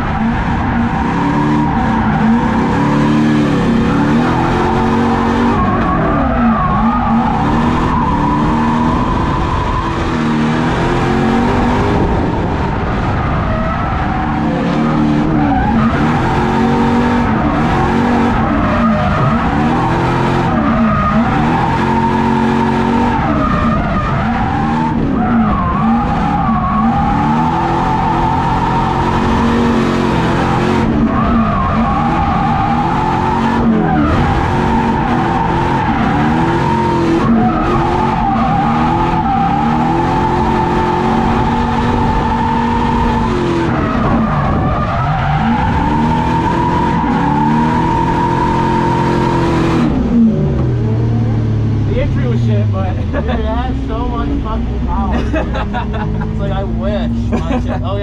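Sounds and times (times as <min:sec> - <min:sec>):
car engine revving: 0:00.0 - 0:58.0
tires squealing: 0:00.0 - 0:58.0.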